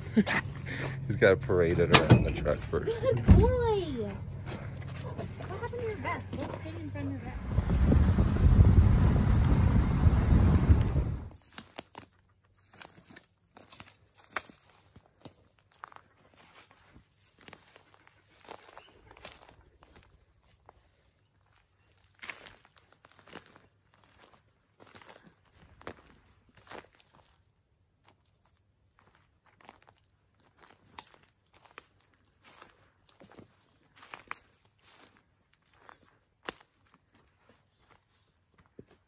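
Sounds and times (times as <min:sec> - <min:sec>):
footsteps on dry forest floor: 0:02.5 - 0:07.1, 0:11.3 - 0:39.0
twigs snapping: 0:30.6 - 0:32.1, 0:36.4 - 0:37.0.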